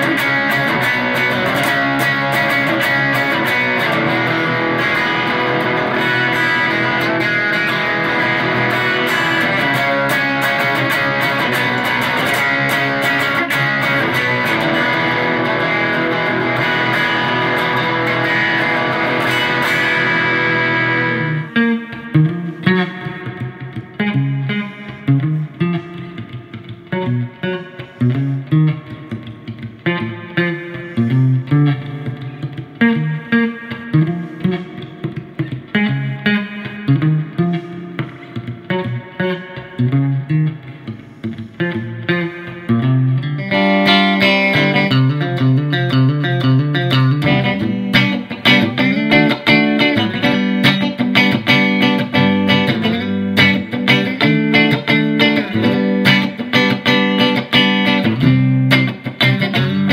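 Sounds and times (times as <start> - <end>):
electric guitar: 0.0 - 59.9.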